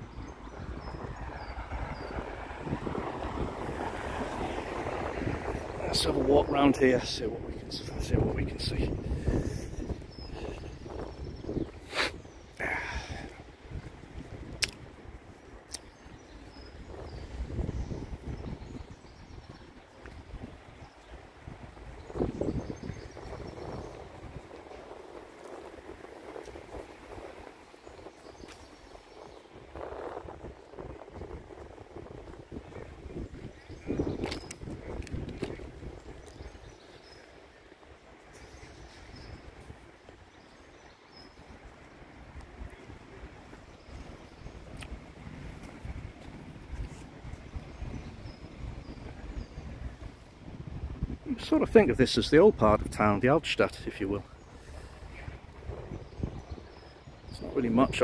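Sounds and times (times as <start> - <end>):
distant traffic: 0.0 - 8.8
wind gusting on microphone: 0.0 - 58.0.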